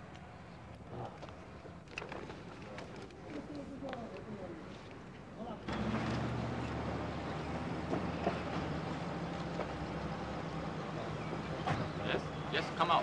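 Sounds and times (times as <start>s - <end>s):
vehicle engine idling: 5.7s - 13.0s.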